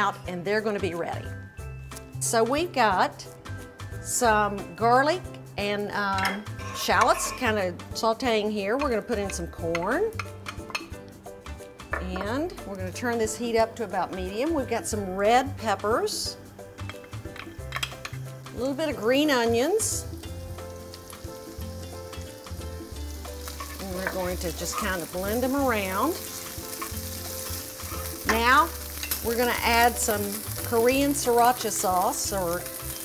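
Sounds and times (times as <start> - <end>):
light background music: 0.0 - 33.0
wooden spoon scraping a skillet: 6.4 - 7.5, 23.4 - 32.0
food sauteing in a skillet: 16.7 - 33.0.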